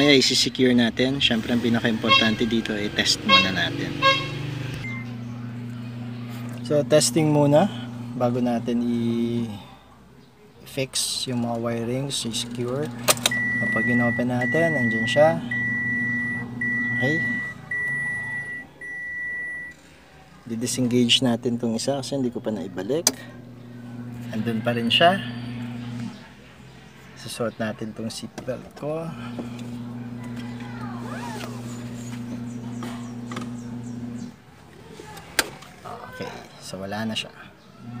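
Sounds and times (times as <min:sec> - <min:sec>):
seatbelt reminder chime beeping: 0:13.2 - 0:19.7.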